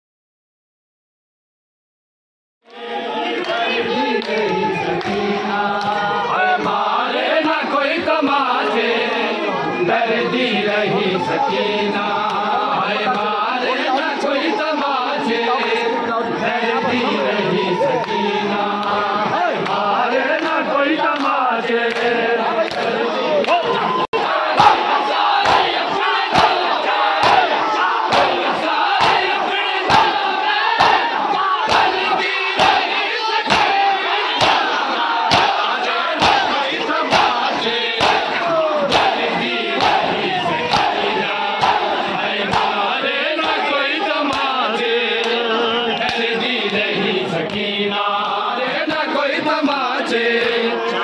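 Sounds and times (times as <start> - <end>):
crowd slapping chests: 2.7 - 50.9
men shouting and chanting: 2.7 - 51.0.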